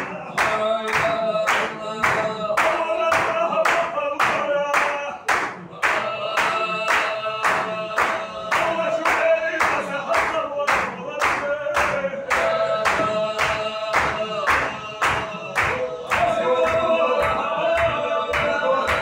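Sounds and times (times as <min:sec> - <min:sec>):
hands clapping in a steady beat: 0:00.0 - 0:19.0
men chanting together: 0:00.0 - 0:19.0.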